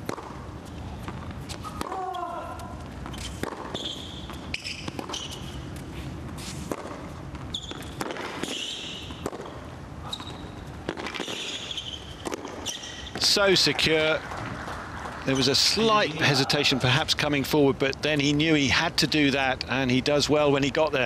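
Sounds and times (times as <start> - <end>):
tennis ball struck by rackets: 0.0 - 2.1, 3.0 - 5.5, 6.4 - 9.6, 10.8 - 13.3
sneakers squeaking on court: 2.8 - 13.2.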